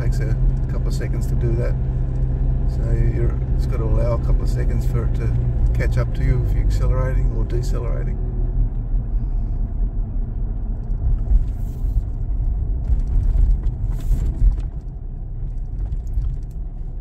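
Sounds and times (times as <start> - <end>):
engine and tyres rumbling: 0.0 - 17.0.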